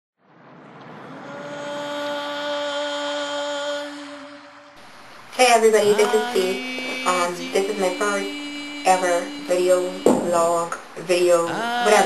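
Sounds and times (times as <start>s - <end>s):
wash of noise: 0.2s - 5.4s
steady held tone: 1.2s - 12.0s.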